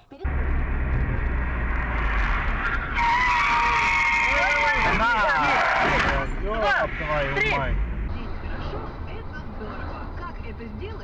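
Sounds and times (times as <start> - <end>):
road and engine rumble: 0.0 - 11.0.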